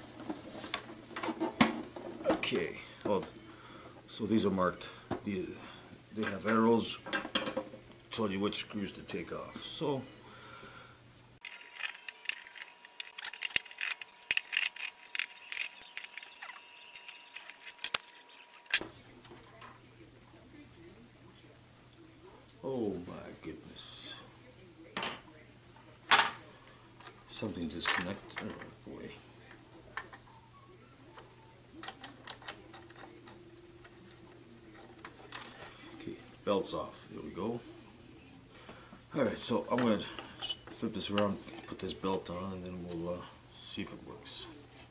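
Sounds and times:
faint steady hum: 0.0s - 44.9s
screwdriver clicking on screws: 11.4s - 18.8s.

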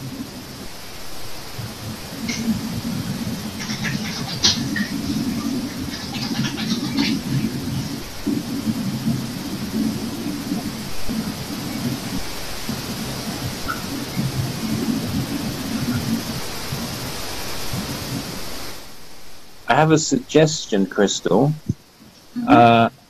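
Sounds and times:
wind buffeting microphone: 0.0s - 19.1s.

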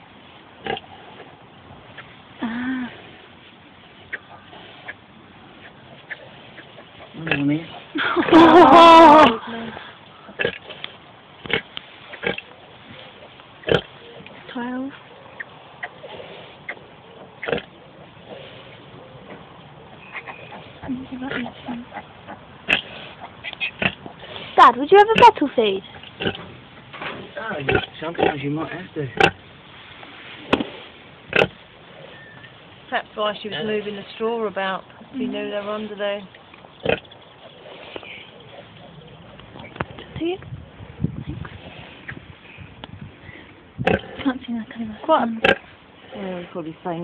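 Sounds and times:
pigs grunting: 13.6s - 14.2s, 15.3s - 26.5s, 27.6s - 29.5s, 31.3s - 32.4s, 36.8s - 40.2s, 43.8s - 44.3s.

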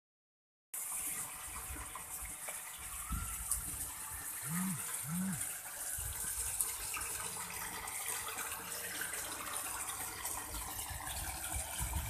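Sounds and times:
water rushing through pond filter: 0.8s - 12.0s.

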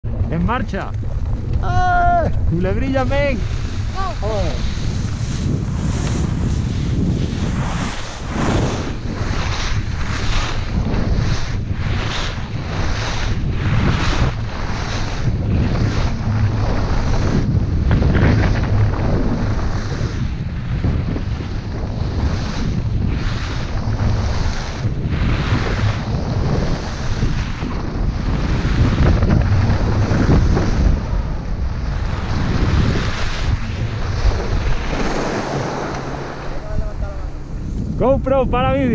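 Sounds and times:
wind buffeting microphone: 0.0s - 38.9s
ski edges scraping snow: 2.6s - 20.2s, 32.0s - 37.2s.

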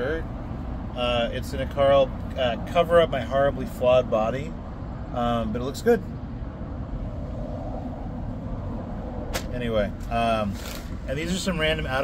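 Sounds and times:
cars passing on road: 0.0s - 12.0s.

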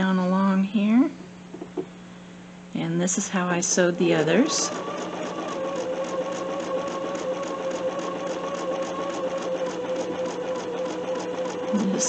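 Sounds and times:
sewing machine stitching: 3.8s - 12.0s.

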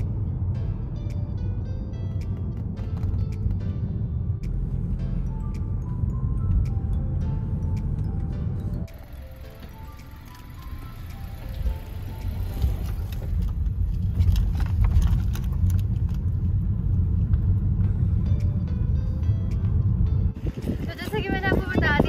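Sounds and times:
car engine and tyres rumbling: 0.0s - 22.0s
light background music: 0.0s - 22.0s.

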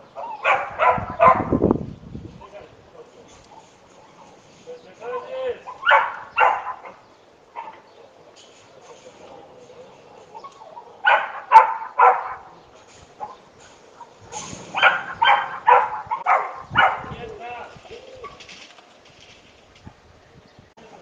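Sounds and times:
dog barking: 0.2s - 1.6s, 5.7s - 7.9s, 10.4s - 12.5s, 13.2s - 17.2s.

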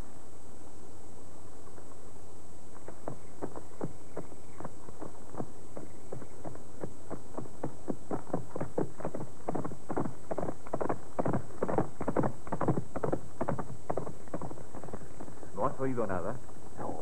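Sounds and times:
galloping hoofbeats: 2.7s - 16.6s.

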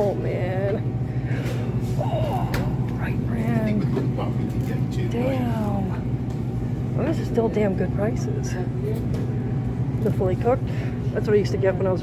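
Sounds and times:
refrigerated display cases humming: 0.0s - 12.0s.

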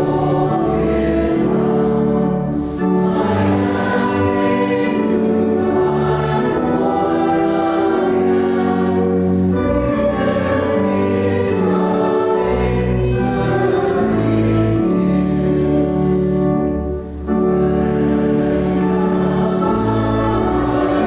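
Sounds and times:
congregation singing a hymn: 0.0s - 21.0s.

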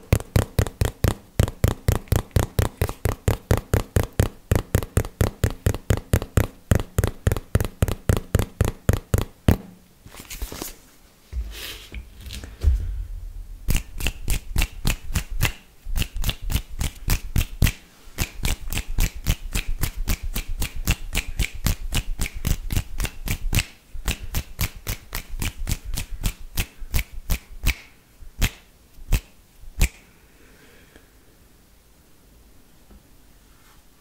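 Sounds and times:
fast finger and mouth clicking: 0.1s - 9.4s, 13.7s - 30.0s
low rumble: 11.4s - 14.3s.

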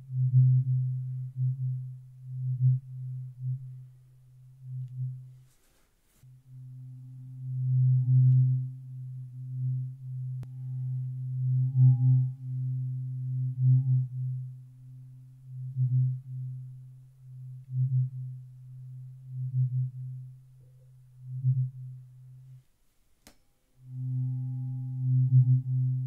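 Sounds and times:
tuning fork ringing: 6.3s - 16.7s, 23.8s - 26.0s.

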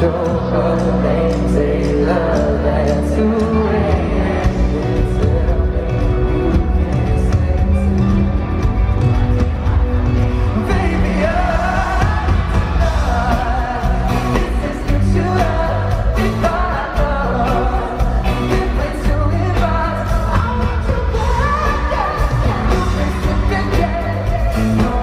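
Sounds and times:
man singing into a microphone: 0.0s - 8.3s, 10.5s - 25.0s
band accompaniment with bass: 0.0s - 25.0s.

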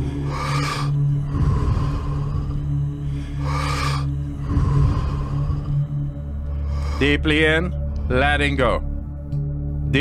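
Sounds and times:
person breathing deeply: 0.0s - 7.2s
droning background music: 0.0s - 10.0s.

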